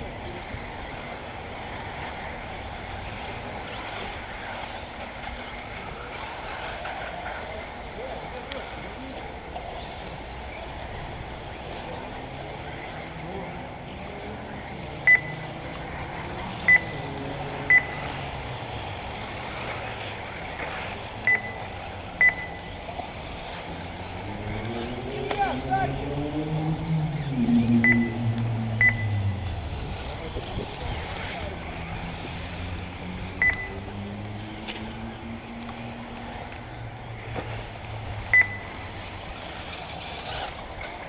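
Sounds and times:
outdoor background noise: 0.0 - 41.0
voices: 0.0 - 41.0
short high beeps: 15.1 - 15.4, 16.7 - 16.9, 17.7 - 18.1, 21.3 - 22.7, 27.8 - 29.4, 33.4 - 33.8, 38.3 - 38.7.

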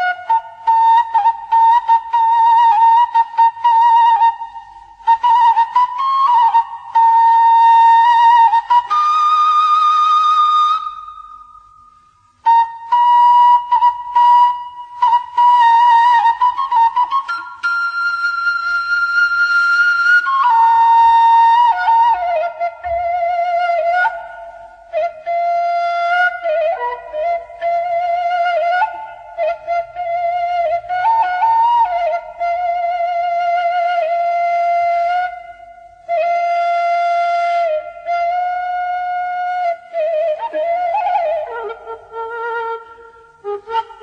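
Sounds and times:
flute playing slow melody: 0.0 - 44.0.

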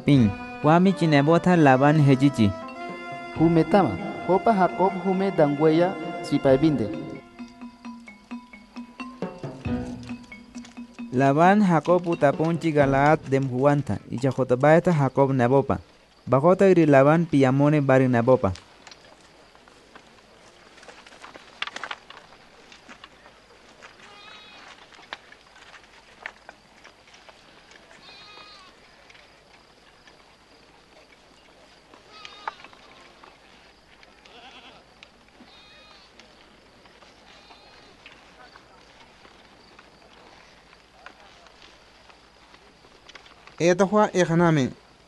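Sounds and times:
softly plucked background music: 0.0 - 13.1
livestock bleating: 0.2 - 7.4, 24.0 - 24.8, 28.0 - 28.8, 32.0 - 36.2, 37.2 - 38.1.

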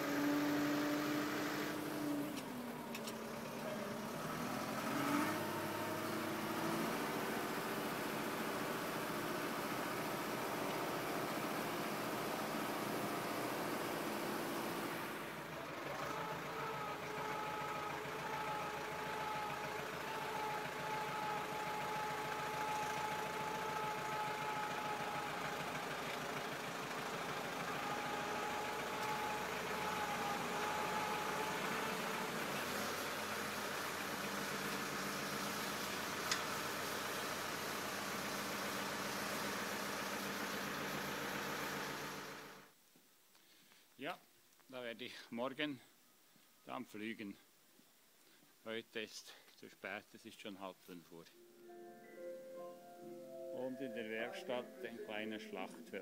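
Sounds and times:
tractor engine running: 0.0 - 42.7.

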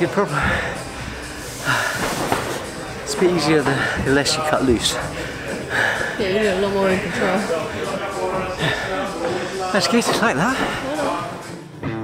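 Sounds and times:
indistinct voices: 0.0 - 11.7.

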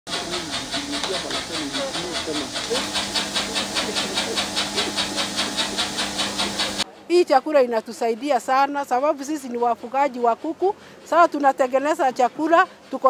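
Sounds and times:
motor hum: 0.1 - 6.8
feed mixer paddles swishing: 0.1 - 6.9.

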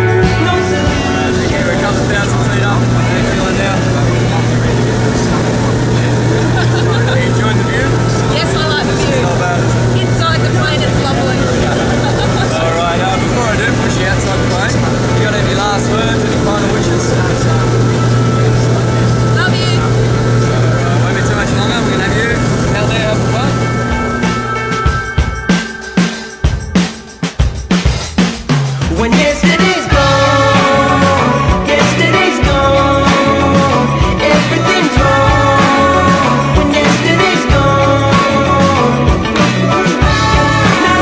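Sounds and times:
airplane engines droning: 0.0 - 26.4
people talking and calling out: 0.0 - 26.7.

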